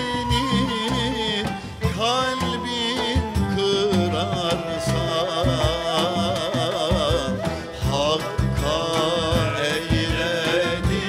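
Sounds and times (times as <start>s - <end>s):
man singing: 0.0s - 11.0s
steady drum beat: 0.0s - 11.0s
string ensemble with drums: 0.0s - 11.0s.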